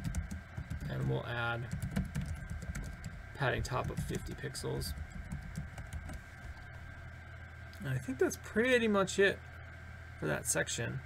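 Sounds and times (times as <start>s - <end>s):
steady low hum: 0.0s - 11.0s
keyboard keystrokes: 1.7s - 3.1s.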